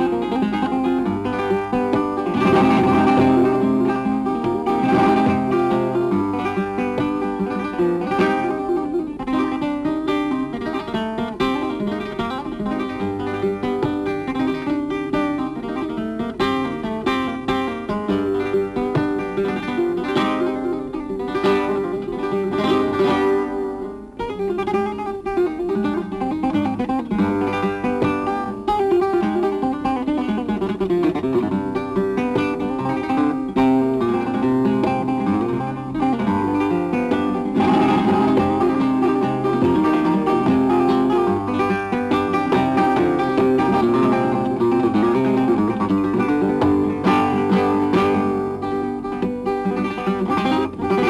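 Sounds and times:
flamenco guitar playing: 0:00.0 - 0:51.0.

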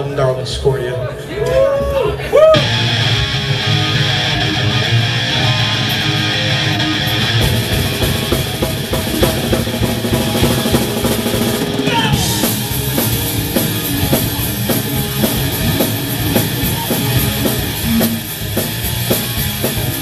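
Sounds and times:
bass guitar: 0:01.5 - 0:20.0
distorted electric guitars: 0:02.4 - 0:20.0
drum kit: 0:02.4 - 0:20.0.

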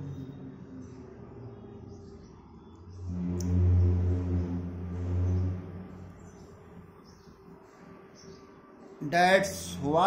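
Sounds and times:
low steady drone: 0:00.0 - 0:10.0.

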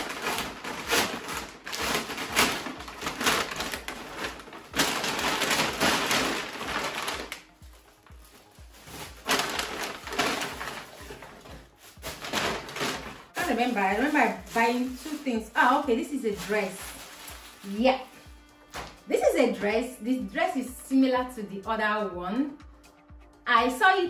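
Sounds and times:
paper bag crinkling: 0:00.0 - 0:18.2.

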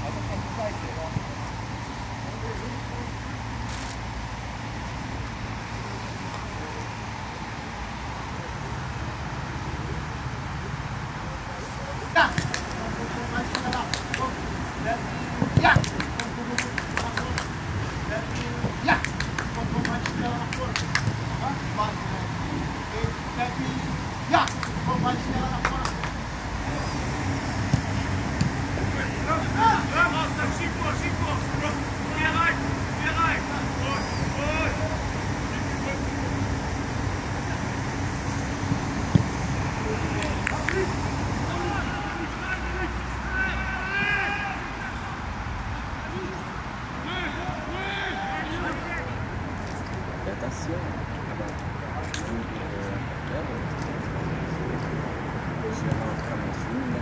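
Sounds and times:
distant players shouting: 0:12.0 - 0:22.1, 0:23.0 - 0:49.3
ball kicks: 0:15.3 - 0:17.4, 0:27.6 - 0:28.6, 0:39.1 - 0:39.4.

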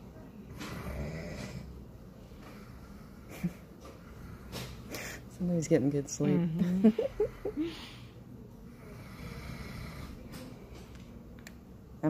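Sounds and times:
man snoring: 0:00.6 - 0:01.8, 0:08.8 - 0:10.2.

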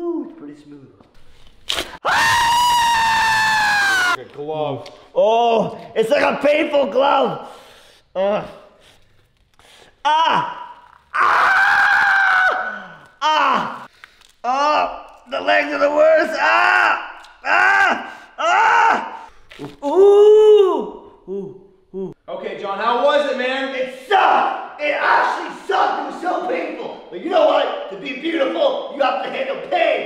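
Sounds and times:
man screaming in pain: 0:10.0 - 0:13.9.

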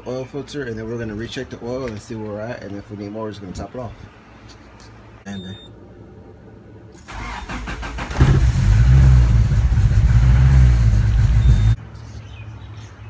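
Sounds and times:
engine starter cranking: 0:07.0 - 0:10.2
car engine running: 0:07.1 - 0:11.8.

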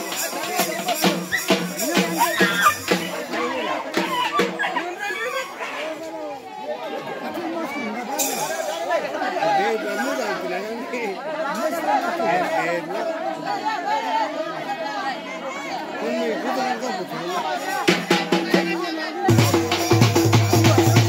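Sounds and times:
crowd chatter: 0:00.0 - 0:21.0.

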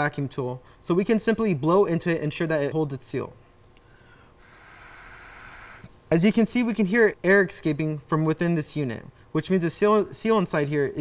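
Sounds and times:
air hissing through a valve: 0:04.4 - 0:05.9
thin high whistle: 0:04.4 - 0:05.9.

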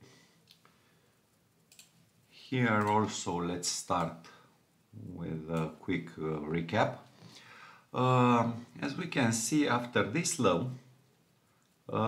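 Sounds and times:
computer mouse clicks: 0:01.7 - 0:02.0.

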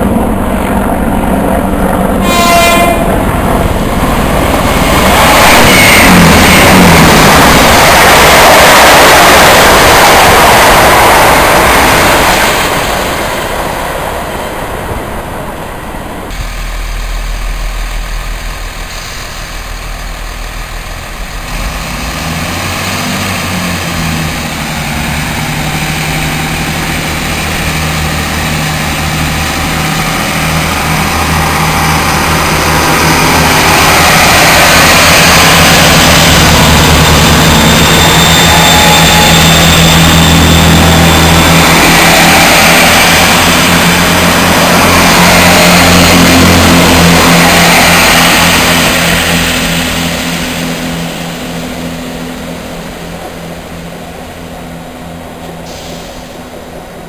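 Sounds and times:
diesel train engines droning: 0:00.0 - 0:57.0
wheel and rail noise: 0:00.0 - 0:57.0.

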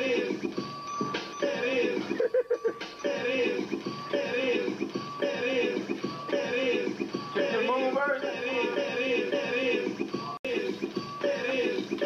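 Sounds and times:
electronic music: 0:00.0 - 0:12.0.

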